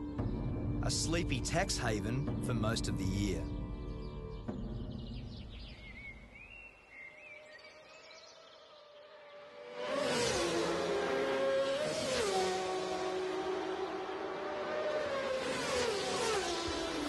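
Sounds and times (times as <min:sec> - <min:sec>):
birds chirping: 0:00.0 - 0:17.0
racing motorcycle passing: 0:08.4 - 0:17.0.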